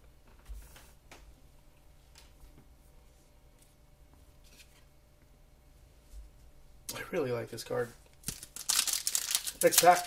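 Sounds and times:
cards rustling and tapping: 0:08.2 - 0:10.0.

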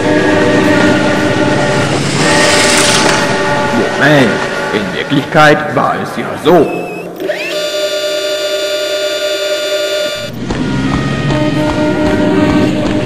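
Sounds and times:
train horn blast: 0:00.0 - 0:05.5, 0:07.4 - 0:13.0
music: 0:00.0 - 0:05.7, 0:10.3 - 0:13.0.

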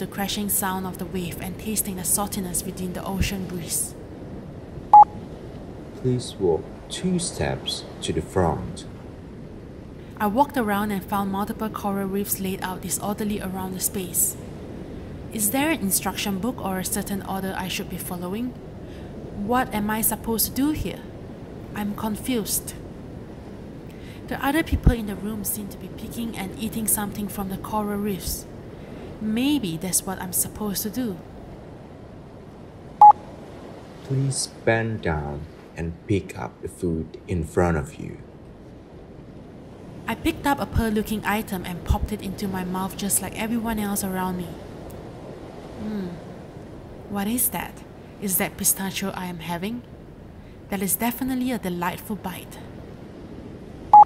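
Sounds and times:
faint low rushing background: 0:00.0 - 0:54.0
faint steady hiss: 0:00.0 - 0:54.0
short electronic beep: 0:05.0 - 0:05.2.

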